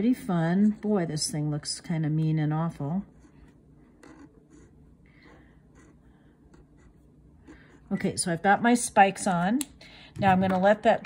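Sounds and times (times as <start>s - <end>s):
pen nib scratching on paper: 3.0s - 8.2s.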